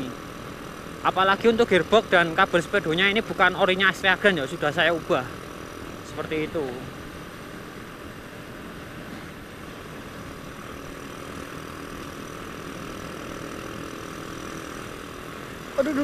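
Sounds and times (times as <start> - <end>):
motorcycle engine running steadily: 0.0 - 16.0.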